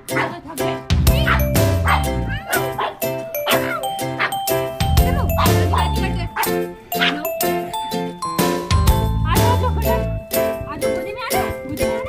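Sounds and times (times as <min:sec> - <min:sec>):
background music with beat: 0:00.0 - 0:12.0
dog yipping: 0:01.2 - 0:04.4, 0:05.3 - 0:07.3.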